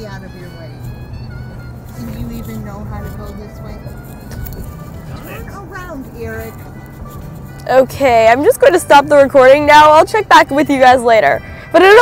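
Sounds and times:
background music: 0.0s - 12.0s
road noise inside car: 0.0s - 12.0s.

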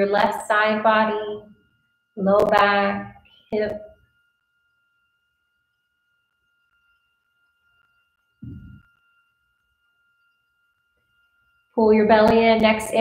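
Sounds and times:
faint high whine: 0.0s - 13.0s
low muffled sound: 8.4s - 8.9s.

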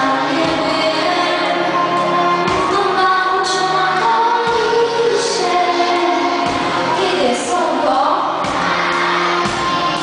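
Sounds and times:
drums: 0.0s - 10.0s
girl singing into a microphone: 0.0s - 10.0s
keyboard: 0.0s - 10.0s.

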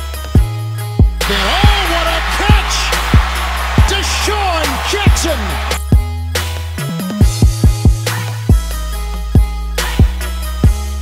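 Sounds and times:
backing song with deep bass: 1.2s - 5.9s.

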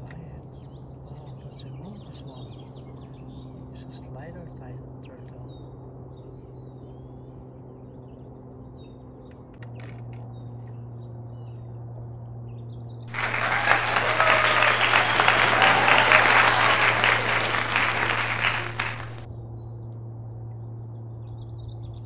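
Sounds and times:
crowd clapping: 13.1s - 19.3s.

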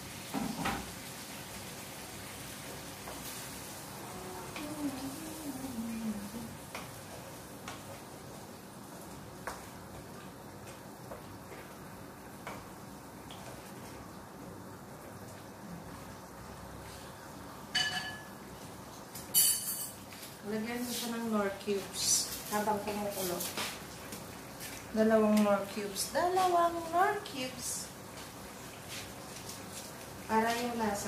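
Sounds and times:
sauce sizzling in a pan: 0.0s - 5.7s.

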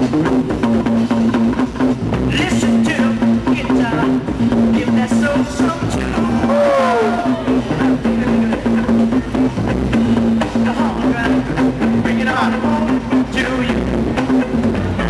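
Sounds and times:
funk music over loudspeakers: 0.0s - 15.0s.

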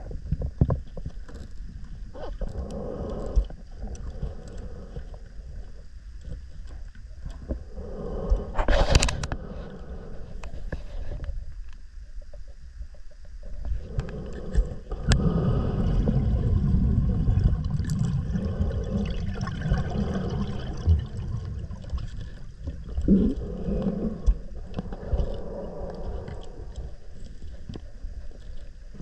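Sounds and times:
underwater gurgling rumble: 0.0s - 29.0s.

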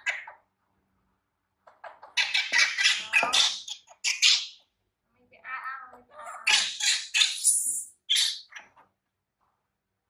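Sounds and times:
baby monkey crying and squealing: 6.4s - 8.5s.

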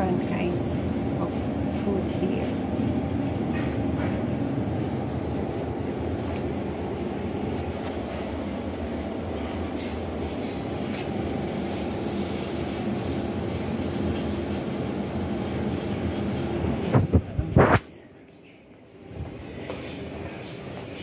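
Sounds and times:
restaurant room rumble: 0.0s - 21.0s.

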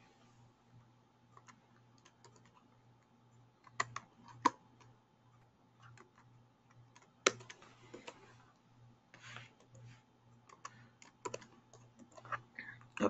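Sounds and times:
faint low hum: 0.0s - 13.0s
keyboard and mouse clicking: 1.4s - 2.6s, 3.6s - 4.9s, 5.8s - 8.2s, 10.4s - 13.0s.

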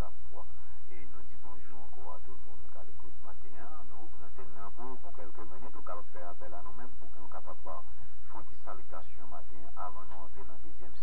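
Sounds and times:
person speaking: 0.0s - 11.0s
steady low hum: 0.0s - 11.0s.

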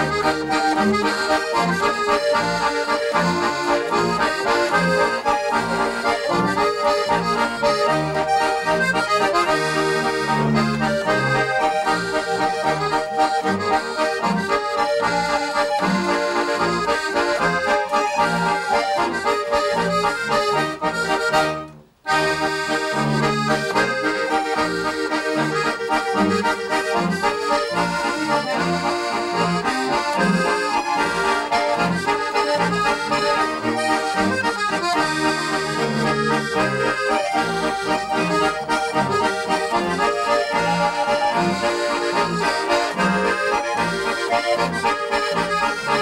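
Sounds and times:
button accordions playing a waltz: 0.0s - 46.0s
double bass line: 0.0s - 46.0s.

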